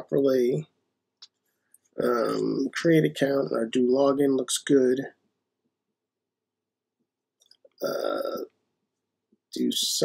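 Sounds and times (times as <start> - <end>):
man saying uh: 0.0 - 0.6, 2.0 - 5.1, 7.8 - 8.5, 9.6 - 10.0.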